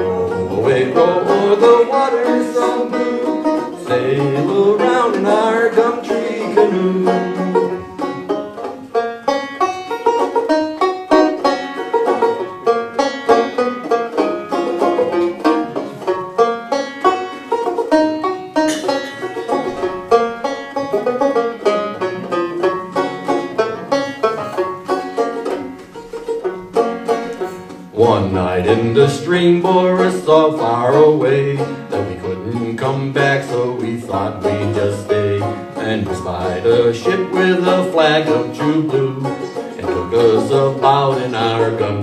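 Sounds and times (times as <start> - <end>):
banjo picking: 0.0 - 42.0.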